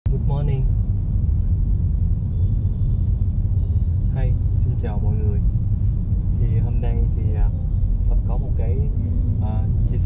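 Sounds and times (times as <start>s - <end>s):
car rumbling from inside cabin: 0.0s - 10.0s.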